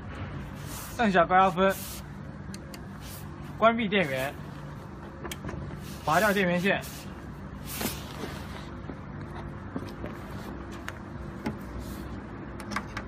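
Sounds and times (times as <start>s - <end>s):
steady low hum: 0.0s - 13.0s
man speaking: 3.6s - 4.4s, 6.0s - 7.0s.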